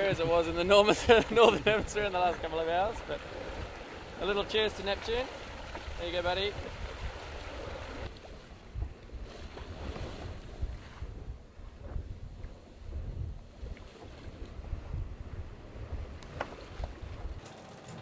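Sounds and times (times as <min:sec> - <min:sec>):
wind buffeting microphone: 0:00.0 - 0:17.5
water rushing along hull: 0:00.0 - 0:18.0.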